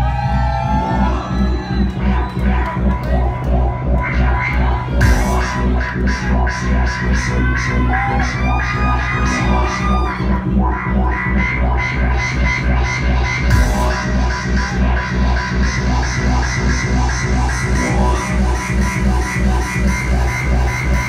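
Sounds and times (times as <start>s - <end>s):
electronic dance music: 0.0s - 21.0s.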